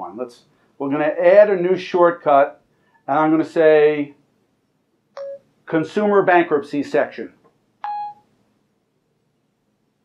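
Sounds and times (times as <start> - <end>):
short electronic beep: 7.8 - 8.2.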